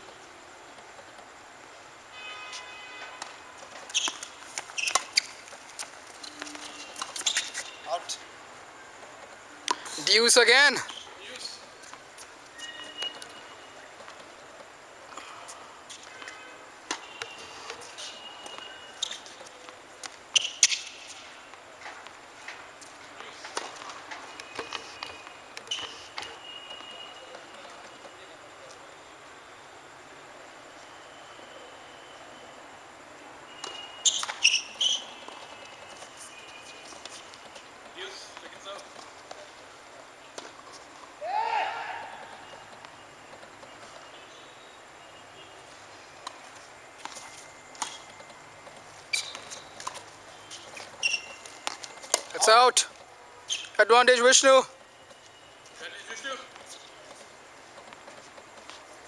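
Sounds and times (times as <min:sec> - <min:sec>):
person shouting: 0:41.2 - 0:42.2.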